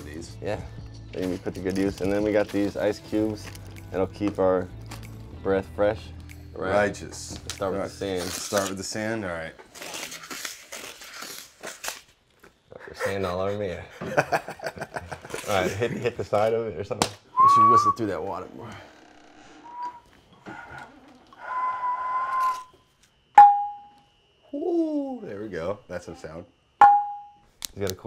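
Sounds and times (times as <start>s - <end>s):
breathy whistle through water pot: 21.4s - 22.7s
ceramic pot struck ringing: 23.4s - 23.9s, 26.8s - 27.4s.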